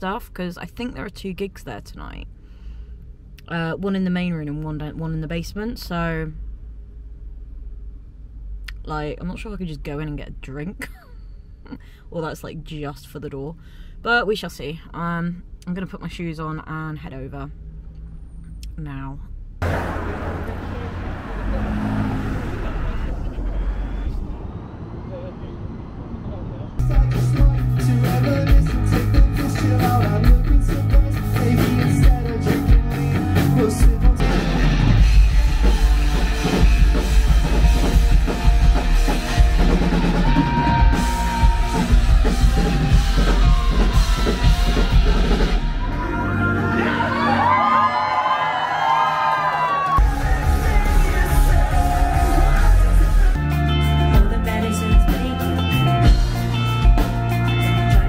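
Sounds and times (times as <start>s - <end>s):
road traffic: 0.0s - 12.3s, 15.4s - 28.1s, 32.8s - 47.0s
crowd yelling: 19.6s - 25.4s, 34.4s - 53.7s
rock band playing loudly: 26.8s - 47.6s, 50.0s - 58.0s.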